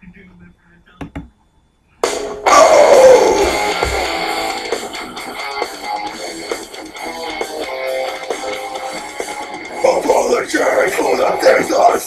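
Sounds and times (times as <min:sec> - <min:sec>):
electric guitar band music: 0:02.0 - 0:12.0.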